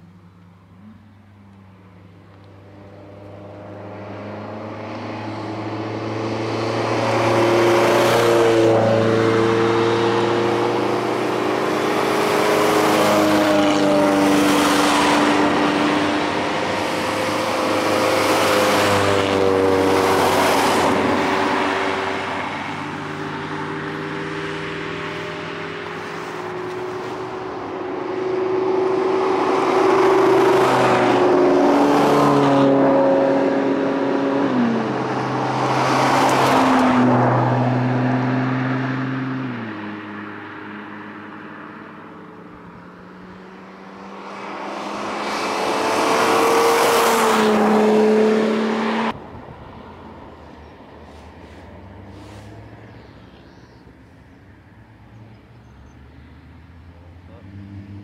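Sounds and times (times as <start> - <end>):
rally car engines accelerating past: 0.8 - 49.4, 54.9 - 58.0.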